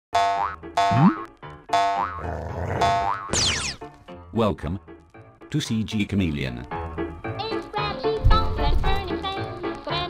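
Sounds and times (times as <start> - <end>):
cartoon springy boings: 0.2 - 2.2, 2.8 - 3.8
light music: 0.4 - 10.0.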